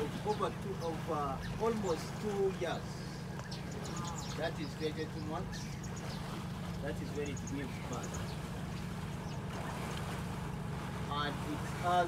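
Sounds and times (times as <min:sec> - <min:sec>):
boat engine droning: 0:00.0 - 0:12.0
faint water: 0:00.0 - 0:12.0.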